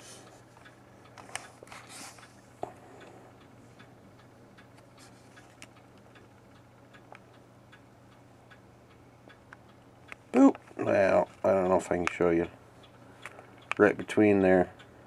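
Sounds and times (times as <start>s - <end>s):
low steady hum: 0.0s - 15.0s
faint light ticks: 0.2s - 14.9s
man speaking: 10.4s - 12.5s, 13.8s - 14.7s.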